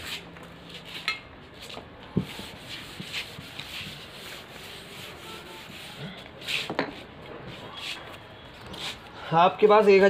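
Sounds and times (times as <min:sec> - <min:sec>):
duster scrubbing chalkboard: 0:00.0 - 0:09.1.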